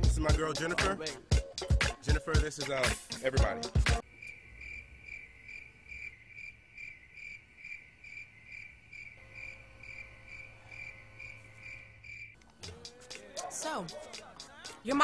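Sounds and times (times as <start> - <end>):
cricket chirping: 4.0 - 13.0
faint low hum: 9.2 - 12.7.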